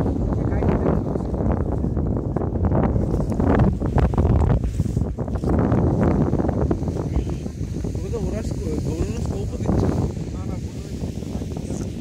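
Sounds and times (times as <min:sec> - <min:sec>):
wind blowing over microphone: 0:00.0 - 0:12.0.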